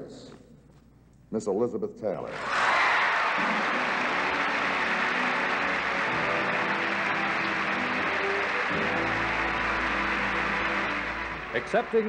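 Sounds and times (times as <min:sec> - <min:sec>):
audience applauding: 0:02.3 - 0:12.0
orchestra playing: 0:03.4 - 0:12.0.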